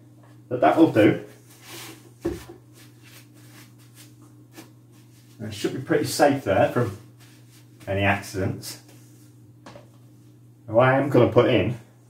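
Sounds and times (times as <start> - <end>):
steady low hum: 0.0 - 12.0
soft rustling and handling: 1.3 - 10.4.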